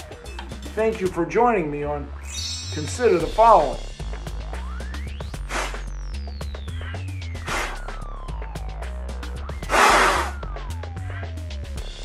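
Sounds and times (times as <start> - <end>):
electronic music with bass and synth: 0.0 - 12.0
breathy blow through face mask: 5.4 - 5.9, 7.4 - 8.0, 9.6 - 10.5.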